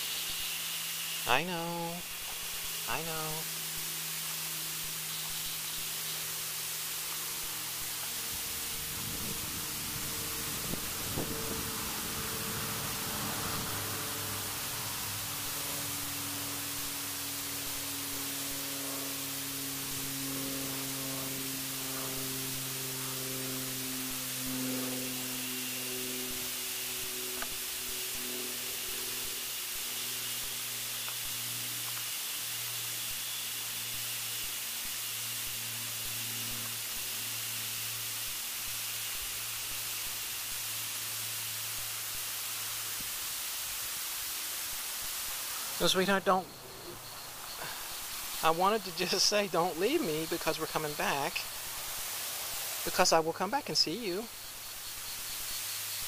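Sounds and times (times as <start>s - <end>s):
recording hiss: 0.0s - 56.0s.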